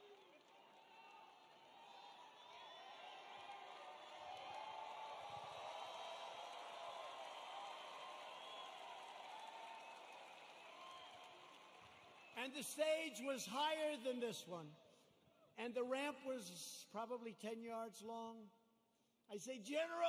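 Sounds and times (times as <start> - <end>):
crowd cheering and shouting: 0.0 - 10.2.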